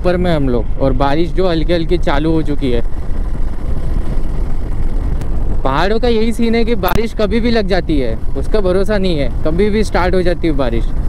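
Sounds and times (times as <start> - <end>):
wind and riding noise: 0.0 - 11.0.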